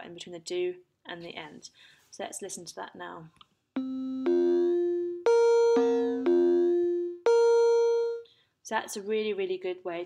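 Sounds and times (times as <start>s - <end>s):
electronic synth beep notes: 3.8s - 8.2s.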